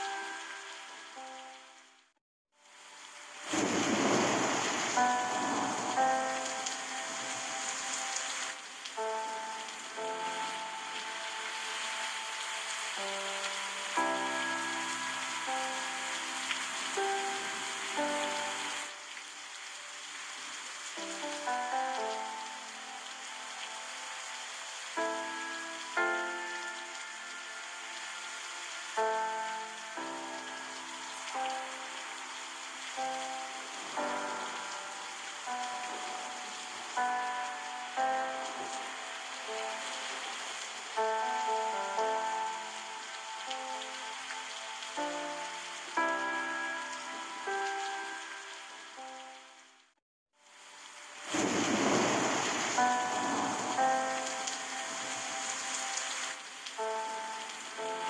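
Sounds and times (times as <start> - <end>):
soft keyboard melody: 0.0 - 2.1, 3.4 - 49.9, 51.0 - 58.0
flowing water rushing: 2.6 - 49.8, 50.4 - 58.0.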